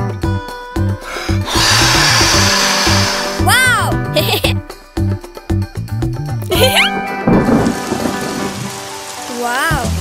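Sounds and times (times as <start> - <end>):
children's music with bass line: 0.0 - 8.6
cartoon blowing whoosh: 1.1 - 4.1.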